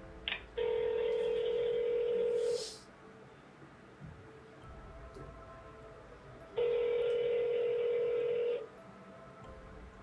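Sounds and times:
telephone ringback beep: 0:00.6 - 0:02.4, 0:06.6 - 0:08.6.

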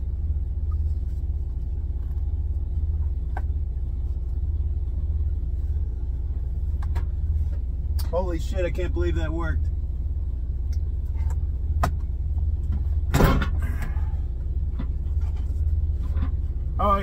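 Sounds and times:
truck engine idling: 0:00.0 - 0:17.0.

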